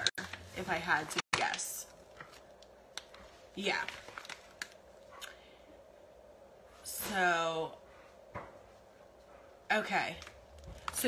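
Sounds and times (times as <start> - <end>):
plastic bag crinkling: 0.1 - 5.0.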